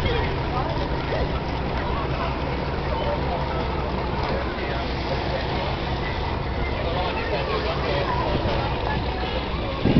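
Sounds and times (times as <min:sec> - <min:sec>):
faint distant voices: 0:00.0 - 0:09.9.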